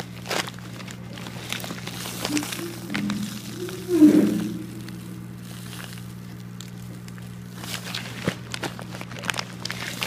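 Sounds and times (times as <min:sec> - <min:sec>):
steady low hum: 0:01.0 - 0:07.7.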